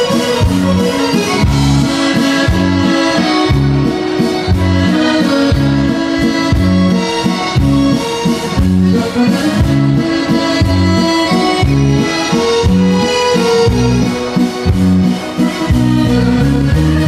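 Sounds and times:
piano accordion melody: 0:00.0 - 0:17.0
steady bass line: 0:00.0 - 0:17.0.

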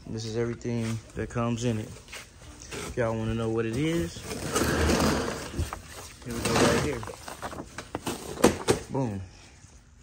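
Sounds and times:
paper and plastic rustling: 0:00.8 - 0:09.0.

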